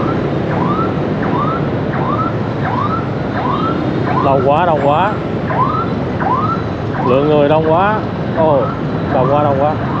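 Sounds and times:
dense city traffic: 0.0 - 10.0.

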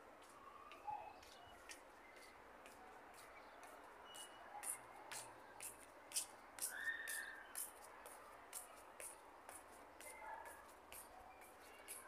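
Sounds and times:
footsteps on brick paving: 1.2 - 12.0.

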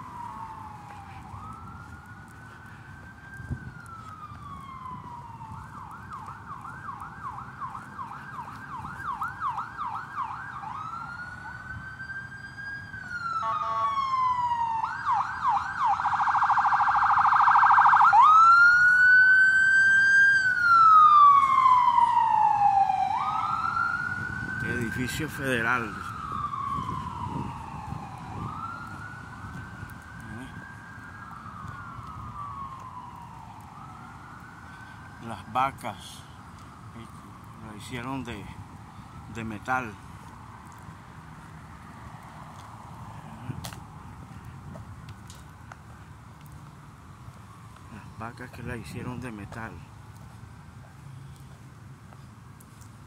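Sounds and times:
emergency siren wailing and yelping: 0.0 - 53.0.

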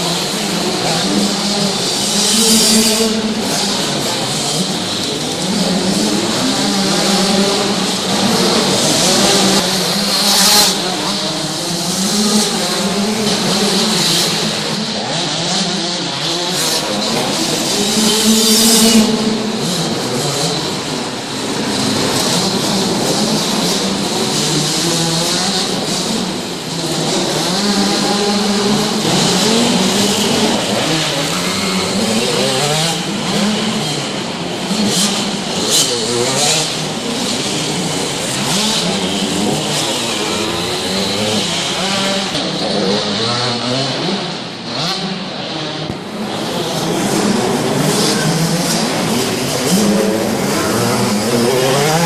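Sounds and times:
motocross bikes revving: 0.0 - 52.0.

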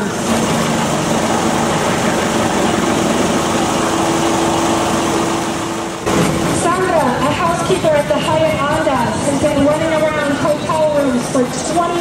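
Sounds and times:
engine idling hum: 0.0 - 7.1
street noise: 0.0 - 12.0.

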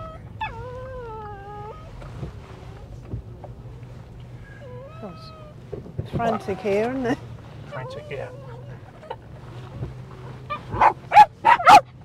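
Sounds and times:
dog whining: 0.0 - 2.1, 4.5 - 9.7
vehicle engine and tyres rumbling: 0.0 - 12.0.

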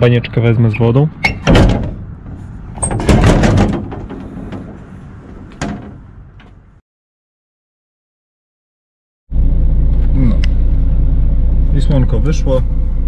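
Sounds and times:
lorry door slamming: 1.3 - 2.0, 2.8 - 4.7.

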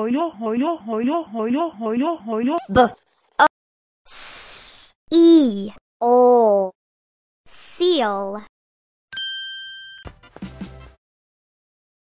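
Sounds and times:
bright two-tone chime: 9.2 - 10.0.

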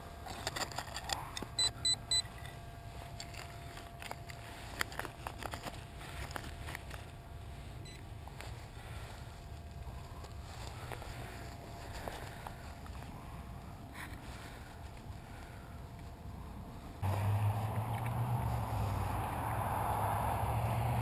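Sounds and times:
metal detector high beeps: 1.6 - 2.5.

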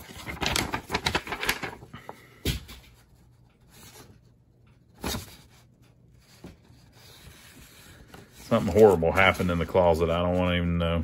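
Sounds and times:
paper rustling: 0.0 - 2.2, 4.9 - 11.0.

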